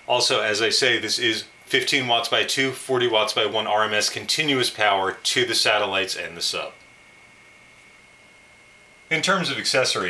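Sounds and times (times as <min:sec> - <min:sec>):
recording hiss: 0:00.0 - 0:08.0
thin high whine: 0:00.0 - 0:10.0.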